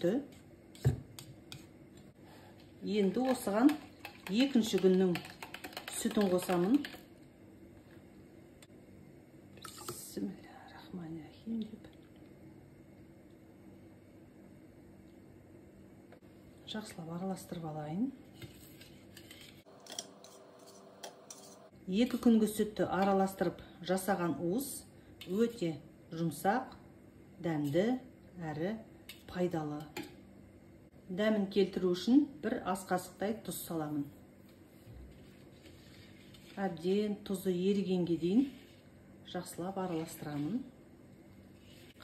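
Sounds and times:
whisk wires clicking on metal bowl: 3.0s - 7.1s
whisk swishing liquid: 3.2s - 7.1s, 34.7s - 36.7s
kitchen utensils clicking: 19.8s - 21.6s.

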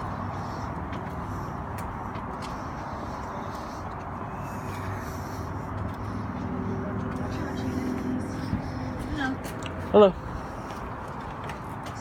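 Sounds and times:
motor vehicles rumbling: 0.0s - 12.0s.

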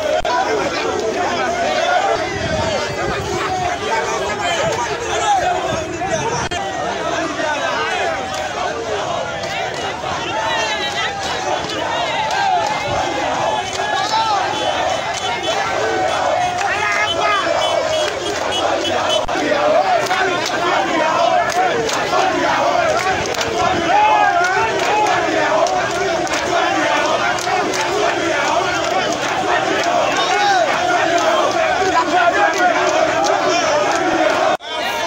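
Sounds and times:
crowd of men shouting: 0.0s - 35.0s.

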